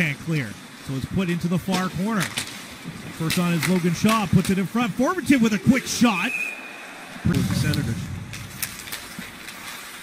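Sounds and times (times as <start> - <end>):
steady hiss: 0.0 - 10.0
sticks and skates clicking on ice: 1.7 - 4.8, 7.6 - 10.0.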